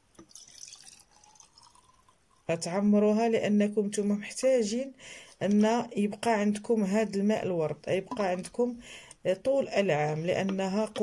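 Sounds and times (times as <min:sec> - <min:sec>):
water trickling into glass jar: 0:00.1 - 0:02.8.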